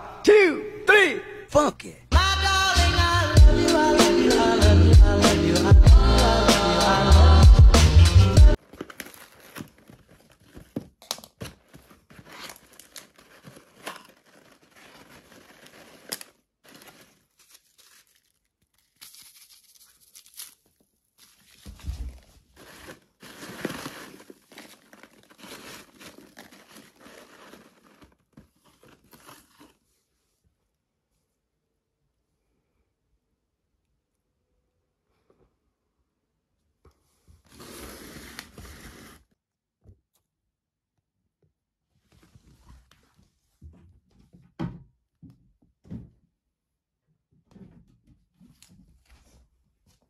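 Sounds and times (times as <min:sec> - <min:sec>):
hands rustling packing peanuts: 0:08.6 - 0:29.8.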